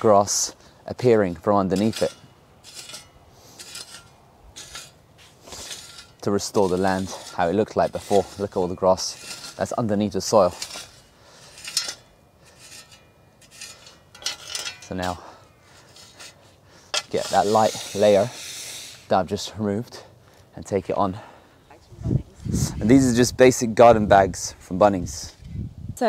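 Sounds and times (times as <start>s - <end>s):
spade scraping soil: 0.0s - 20.0s.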